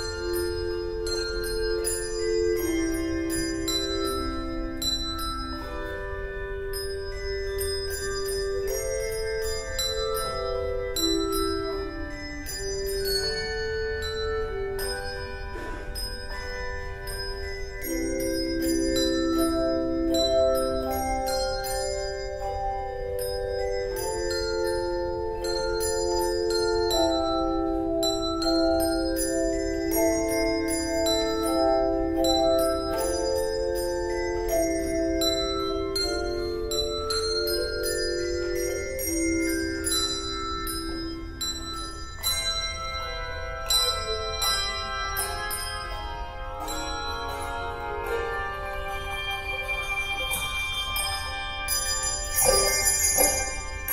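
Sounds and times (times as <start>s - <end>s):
handbell choir playing chords: 0.0s - 53.9s.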